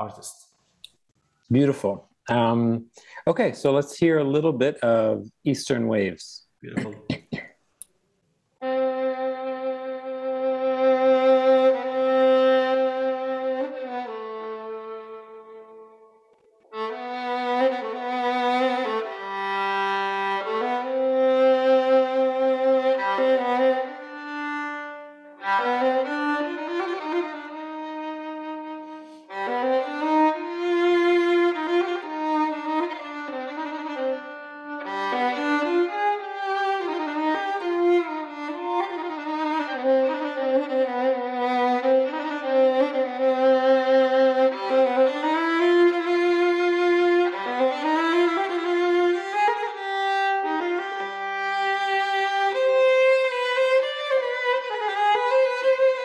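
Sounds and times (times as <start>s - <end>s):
solo violin melody: 8.6s - 56.0s.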